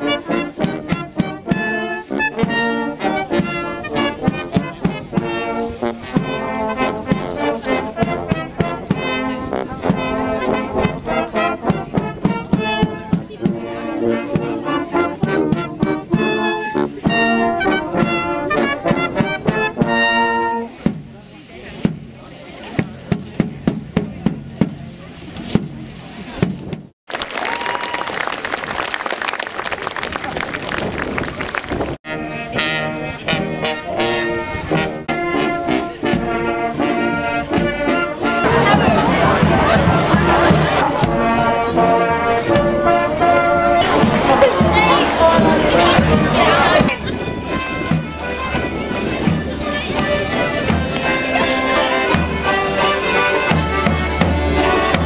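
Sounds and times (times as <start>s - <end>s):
brass band playing: 0.0s - 21.0s, 32.0s - 55.0s
crowd sound: 0.0s - 55.0s.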